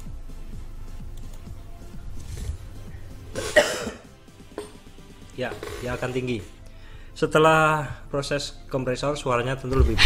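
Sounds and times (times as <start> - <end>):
faint background music: 0.0 - 10.0
man coughing: 3.3 - 4.1.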